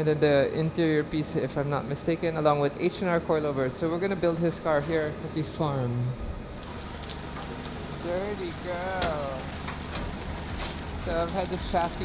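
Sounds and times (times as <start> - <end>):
hose water spraying on car: 6.5 - 12.0.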